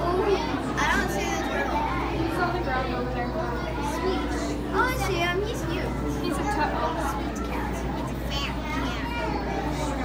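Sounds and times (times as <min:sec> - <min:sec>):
children chattering and calling out: 0:00.0 - 0:10.0.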